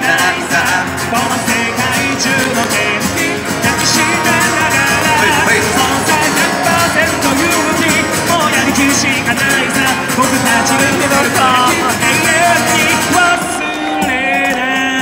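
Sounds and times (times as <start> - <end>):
band playing pop-rock song: 0.0 - 15.0
person singing: 0.0 - 15.0.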